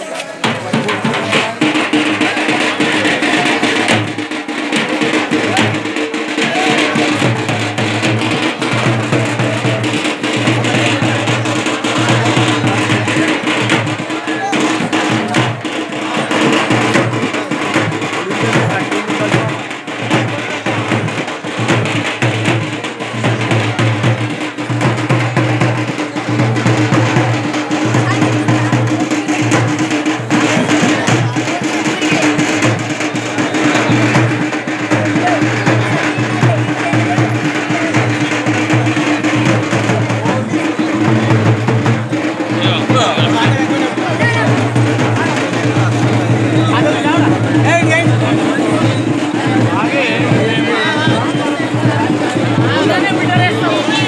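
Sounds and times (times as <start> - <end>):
crowd voices: 0.0 - 54.0
procession drums beating: 0.0 - 54.0.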